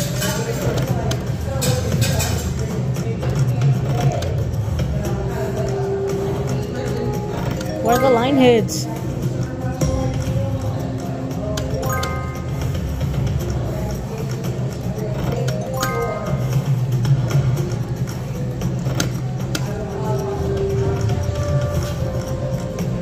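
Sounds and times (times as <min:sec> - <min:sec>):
slot machine clicks: 0:05.5 - 0:23.0
slot machine chime tones: 0:07.0 - 0:08.9, 0:11.7 - 0:12.6, 0:15.5 - 0:16.8.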